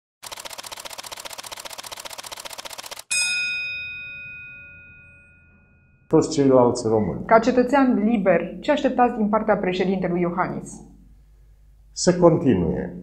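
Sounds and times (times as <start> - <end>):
fast even ticking: 0.2 - 3.1
bell-like ding: 3.1 - 6.4.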